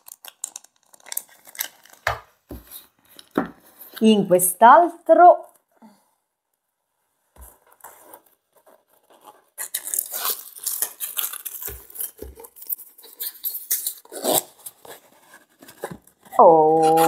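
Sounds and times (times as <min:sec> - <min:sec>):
blade cutting packing tape: 0:09.6 - 0:12.3, 0:13.0 - 0:14.8.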